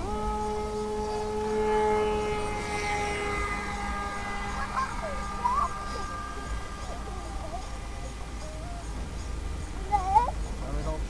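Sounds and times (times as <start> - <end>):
model airplane motor whine: 0.0 - 10.0.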